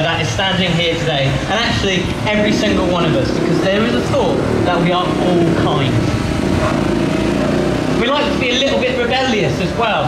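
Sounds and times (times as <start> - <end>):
car engine driving past: 2.4 - 8.5.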